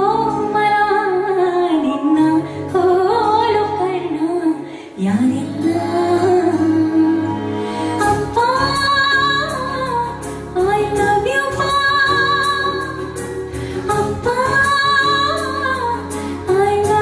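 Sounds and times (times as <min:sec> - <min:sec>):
woman singing slow melody: 0:00.0 - 0:13.1
instrumental accompaniment: 0:00.0 - 0:17.0.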